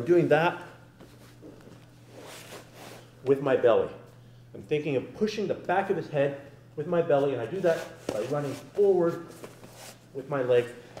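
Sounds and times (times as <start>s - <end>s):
low room hum: 0.0s - 11.0s
clothing rustling on a mat: 1.0s - 3.1s, 7.5s - 10.1s.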